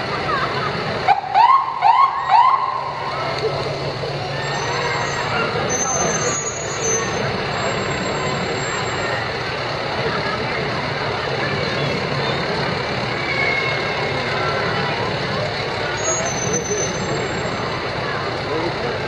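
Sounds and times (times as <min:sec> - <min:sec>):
crowd chatter: 0:00.0 - 0:19.0
fire truck engine running: 0:00.0 - 0:19.0.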